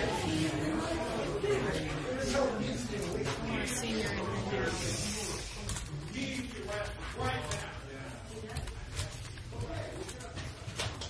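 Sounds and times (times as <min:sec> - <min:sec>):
muffled voices talking: 0:00.0 - 0:11.0.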